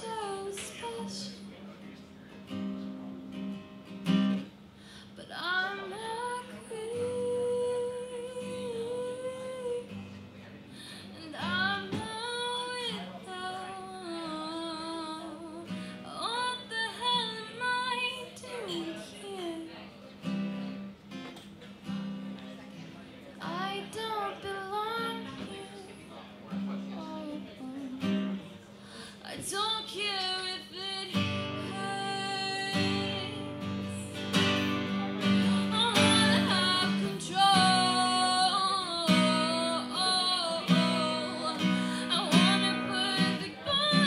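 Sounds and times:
woman singing: 0:00.0 - 0:01.4, 0:05.2 - 0:10.0, 0:11.0 - 0:19.8, 0:23.4 - 0:26.0, 0:29.1 - 0:34.6, 0:35.4 - 0:44.0
acoustic guitar strumming: 0:00.0 - 0:04.6, 0:26.4 - 0:28.5, 0:30.0 - 0:44.0
strummed acoustic guitar: 0:00.0 - 0:44.0.

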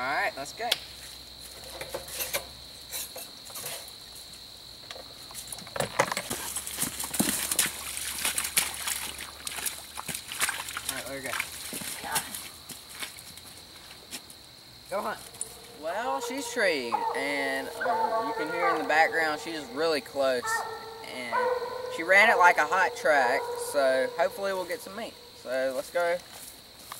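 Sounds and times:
insects trilling: 0:00.0 - 0:26.9
footsteps through grass: 0:06.4 - 0:14.3, 0:15.0 - 0:16.3.

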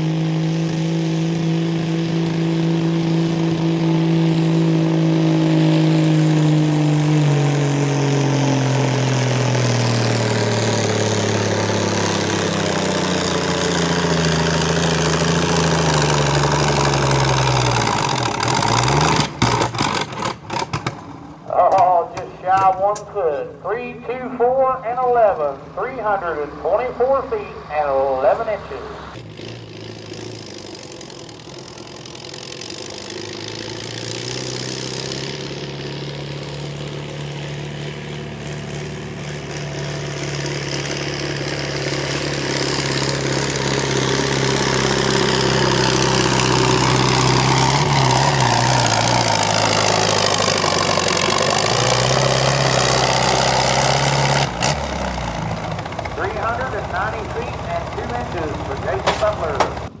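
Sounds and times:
tractor engine working hard: 0:00.0 - 1:00.0.

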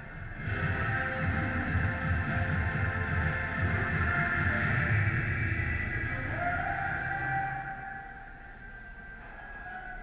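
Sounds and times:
music with pulsing bass: 0:00.0 - 0:09.2.

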